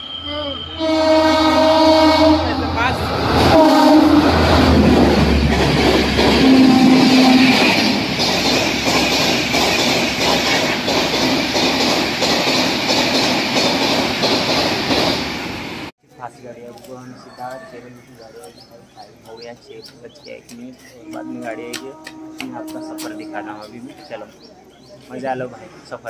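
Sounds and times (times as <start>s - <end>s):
rush of passing train coaches: 0.0s - 15.9s
clickety-clack of train wheels: 5.4s - 15.4s.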